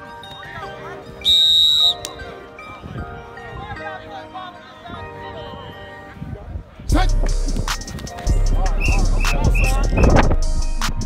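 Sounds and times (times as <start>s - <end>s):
background music: 0.0s - 11.0s
loud whistle blast: 1.2s - 2.2s.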